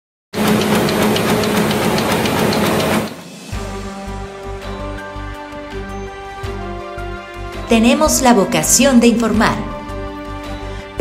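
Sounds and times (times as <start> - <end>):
rapid ticking noise: 0.4 - 3.2
theme music with pulsing bass: 0.6 - 11.0.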